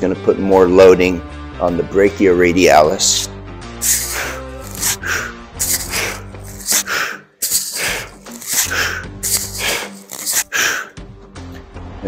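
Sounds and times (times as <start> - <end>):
background music: 0.0 - 12.0
person breathing hard: 3.8 - 11.0.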